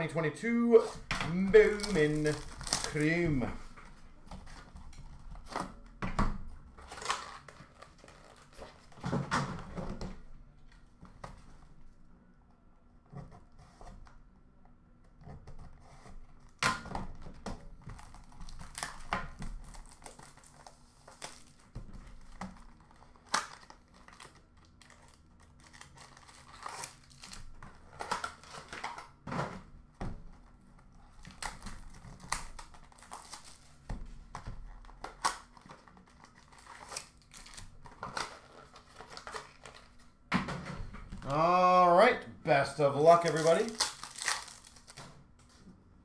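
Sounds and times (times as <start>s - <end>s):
wrappers and cardboard crinkling: 0.5s - 5.9s, 6.7s - 9.7s, 17.7s - 29.2s, 30.2s - 40.2s, 42.5s - 45.7s.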